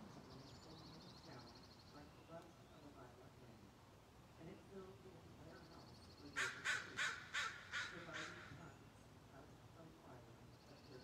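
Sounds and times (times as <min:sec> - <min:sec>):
bird harsh calls: 0:05.8 - 0:08.8.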